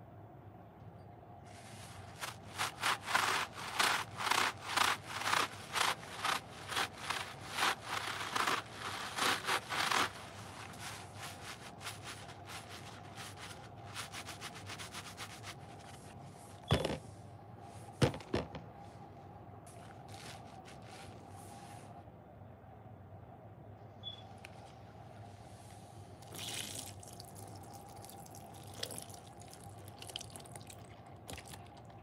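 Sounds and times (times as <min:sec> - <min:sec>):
sponges rubbing and scrubbing: 0:01.5 - 0:16.2, 0:19.7 - 0:21.7
sponge knocking on plastic tub: 0:18.0 - 0:18.6.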